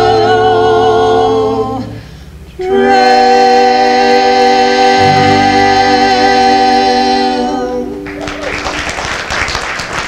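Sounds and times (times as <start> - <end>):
vocal harmony singing: 0.0 - 8.4
audience applause: 8.0 - 10.0.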